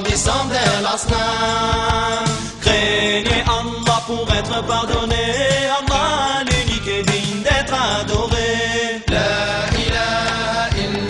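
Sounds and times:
chorus of voices chanting: 0:00.0 - 0:05.1, 0:08.5 - 0:11.0
low drum beats: 0:00.0 - 0:11.0.

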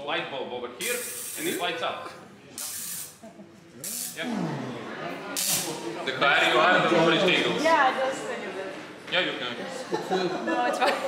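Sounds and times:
tesla coil electrical discharge: 0:00.8 - 0:01.7, 0:02.6 - 0:03.2, 0:03.8 - 0:04.2, 0:05.4 - 0:05.8.

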